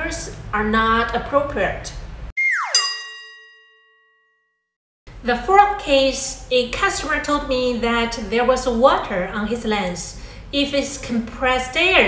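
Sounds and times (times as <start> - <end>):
downward pitch glide: 2.4 - 3.4
bell-like ding: 2.6 - 4.7.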